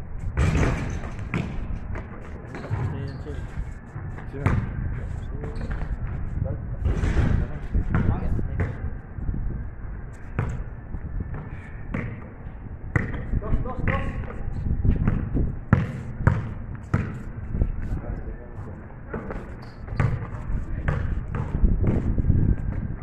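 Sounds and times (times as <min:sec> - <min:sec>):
basketball bouncing on pavement: 0:00.4 - 0:02.9, 0:04.0 - 0:05.9, 0:07.8 - 0:08.8, 0:10.3 - 0:10.6, 0:11.3 - 0:12.3, 0:12.9 - 0:17.8, 0:19.1 - 0:22.9
players' voices: 0:02.2 - 0:09.2, 0:13.2 - 0:14.8, 0:17.1 - 0:21.6.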